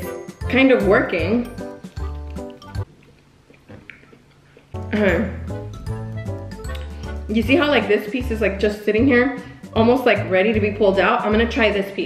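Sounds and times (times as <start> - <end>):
background music: 0.0 - 2.9, 4.7 - 12.0
person chewing fruit: 1.5 - 7.3.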